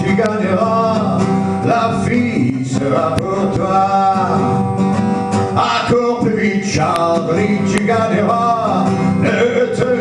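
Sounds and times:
man singing into a microphone: 0.0s - 4.7s, 5.5s - 10.0s
acoustic guitar strumming: 0.0s - 10.0s.

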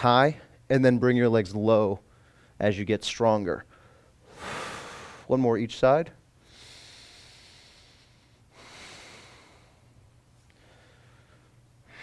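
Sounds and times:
man exhaling hissily: 4.3s - 5.3s, 6.5s - 9.8s.

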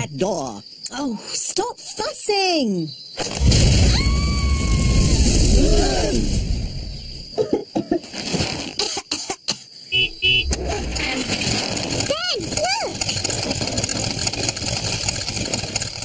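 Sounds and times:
short coughs: 7.4s - 8.0s, 8.8s - 9.7s.

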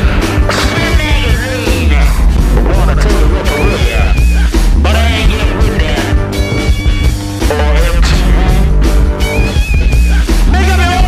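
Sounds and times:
blues-rock song: 0.0s - 11.0s
distorted guitar: 0.0s - 11.0s
drums: 0.0s - 11.0s.

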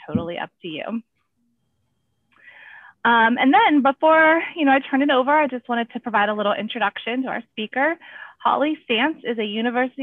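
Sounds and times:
faint breath drawn in: 2.4s - 3.0s.

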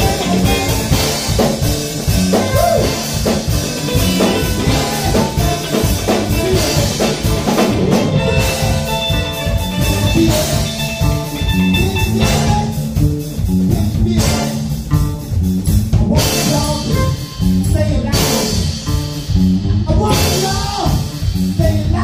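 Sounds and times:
blues band playing: 0.0s - 22.0s.

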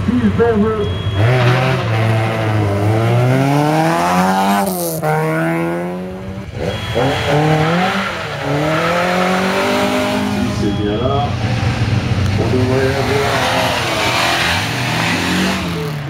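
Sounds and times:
rally car engine accelerating: 0.0s - 16.0s.

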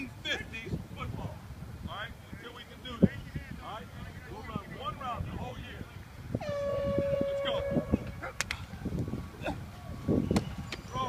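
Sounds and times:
air horn blast: 6.4s - 8.1s.

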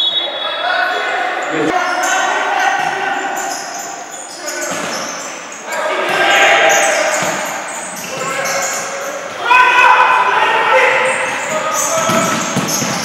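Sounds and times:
sneakers squeaking: 0.0s - 9.5s, 10.7s - 13.0s
players calling out: 0.0s - 13.0s.

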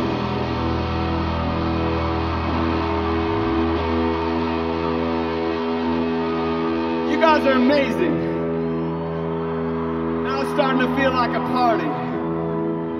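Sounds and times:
electric guitar chord ringing: 0.0s - 12.9s.

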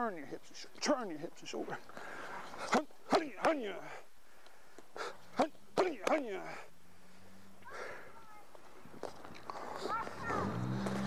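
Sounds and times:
punches hitting focus mitts: 2.7s - 3.8s, 5.4s - 6.4s.

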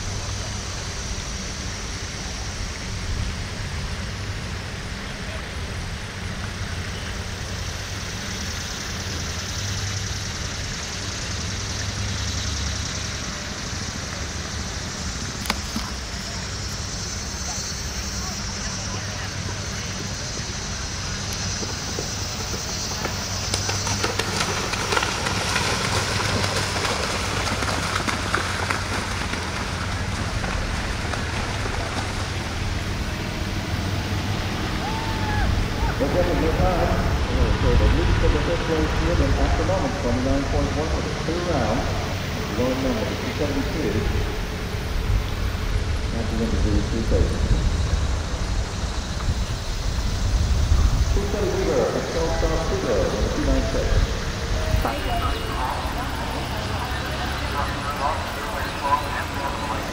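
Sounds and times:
steady low rumble: 0.0s - 59.9s
faint indistinct voices: 15.4s - 22.1s, 51.2s - 59.9s.

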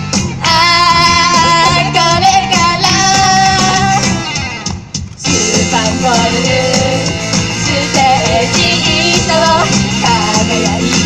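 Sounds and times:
pop backing track over speakers: 0.0s - 11.0s
girls singing into microphones: 0.4s - 4.2s, 5.2s - 11.0s.

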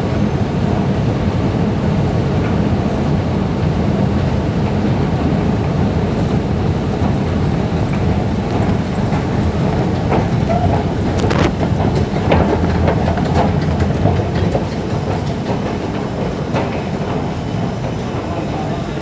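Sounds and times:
train rumbling in underground station: 0.0s - 19.0s.

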